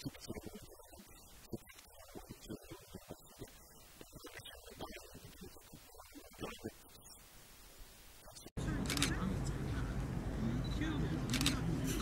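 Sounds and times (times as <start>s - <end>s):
faint indistinct voices: 8.6s - 12.0s
camera shutter clicking: 11.3s - 11.6s.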